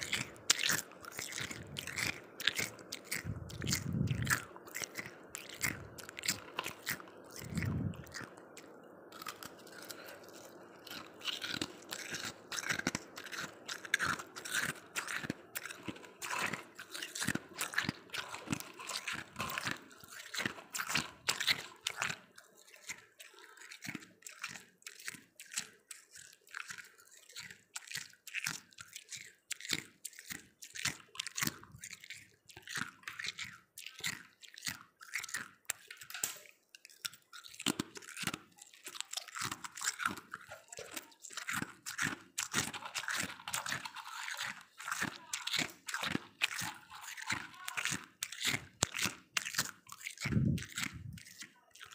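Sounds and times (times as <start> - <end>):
frost crunching while chewed: 0.0 - 51.9.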